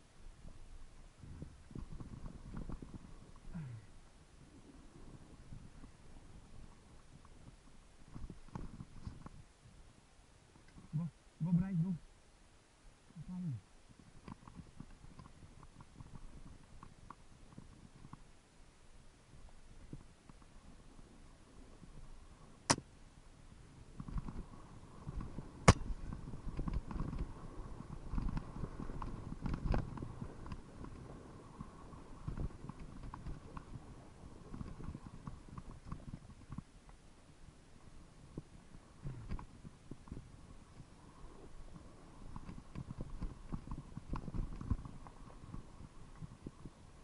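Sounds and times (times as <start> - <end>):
knocks and thumps of rough travel: 1.2 - 3.6, 23.9 - 31.0, 31.6 - 33.8, 34.4 - 36.7, 39.0 - 40.3, 42.3 - 45.6
sharp crack: 25.6 - 26.0.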